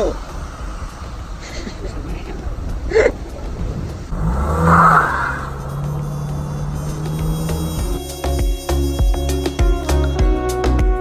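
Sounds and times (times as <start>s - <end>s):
car engine accelerating: 0.0s - 8.1s.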